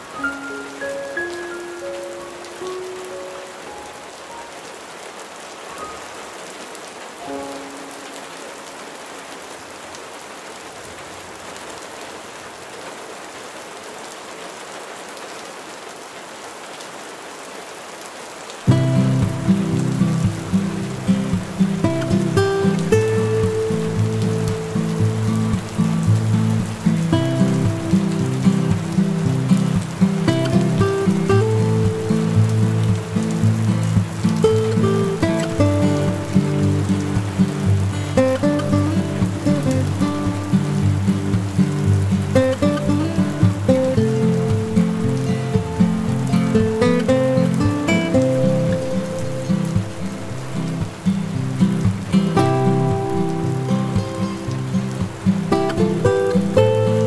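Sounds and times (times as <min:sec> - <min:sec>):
slow instrumental music: 0:00.0 - 0:04.8, 0:07.2 - 0:08.9, 0:18.7 - 0:57.0
rain pattering on window glass: 0:00.0 - 0:57.0.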